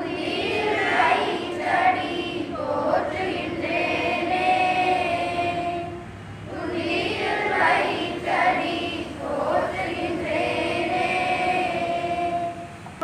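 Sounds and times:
children singing a prayer in unison: 0.0 - 12.8.

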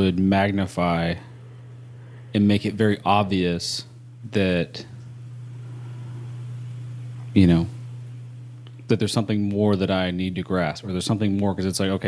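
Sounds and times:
steady low hum with hiss: 0.0 - 12.0.

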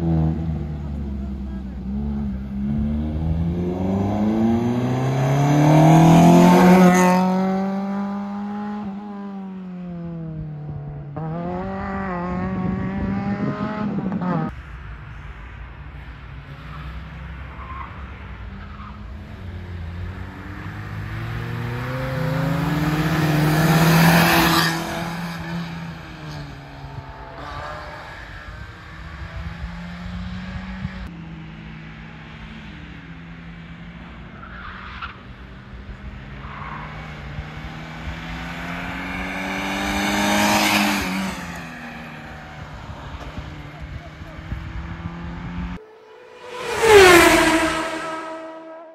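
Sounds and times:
car engines revving: 0.0 - 48.9.

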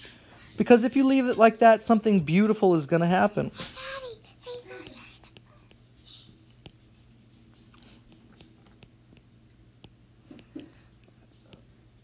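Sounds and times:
steady low hum: 0.0 - 12.0
soft whisper: 3.6 - 6.4
stylus tapping on tablet: 8.1 - 10.7.

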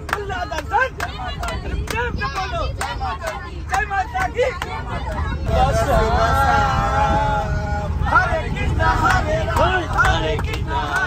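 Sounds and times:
hands clapping in rhythm: 0.0 - 5.3, 9.0 - 11.0
bus rumble: 0.0 - 11.0
men singing together: 2.9 - 11.0.

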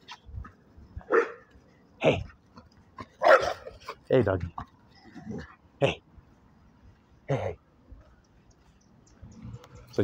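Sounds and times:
dog barking: 1.1 - 1.5, 3.2 - 3.7.

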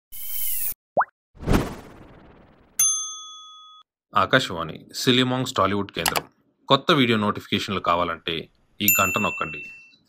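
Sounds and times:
whoosh: 1.4 - 2.8
bell-like ding: 2.8 - 3.9, 8.9 - 10.0.

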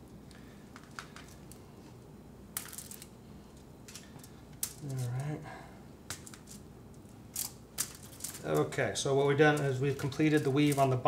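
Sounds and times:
aluminium foil crinkling: 2.6 - 3.1, 6.1 - 11.0.

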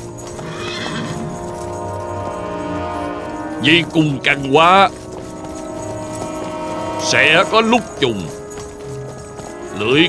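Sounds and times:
horse hoofbeats: 0.0 - 10.0
music of long held notes: 0.0 - 10.0
horse whinny: 0.2 - 3.9.

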